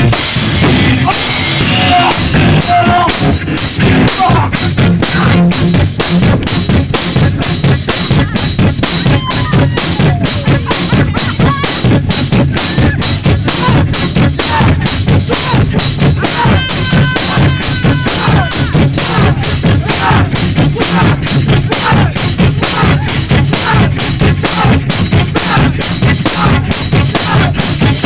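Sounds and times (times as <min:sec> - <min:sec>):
kick and snare drum beat: 0:00.0 - 0:28.0
live band playing: 0:00.0 - 0:28.0.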